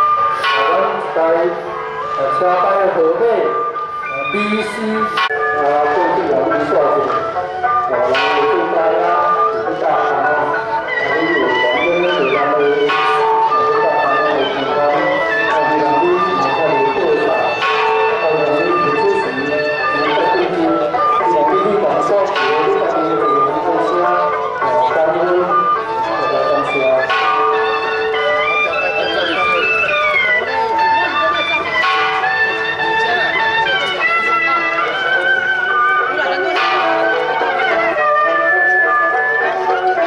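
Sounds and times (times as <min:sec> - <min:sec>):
bells ringing: 0:00.0 - 0:40.0
crowd voices: 0:00.0 - 0:40.0
melodic music: 0:00.0 - 0:40.0
sharp metallic strike ringing: 0:08.0 - 0:09.9, 0:12.8 - 0:20.2.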